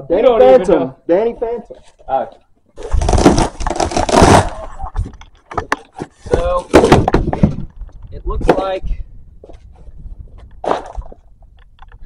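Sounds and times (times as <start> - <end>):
packaging scrape: 2.8 - 4.7.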